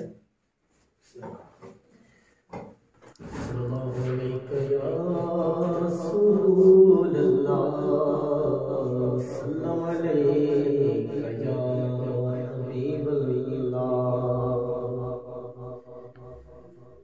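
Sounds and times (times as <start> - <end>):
man singing unaccompanied: 3.2 - 17.0.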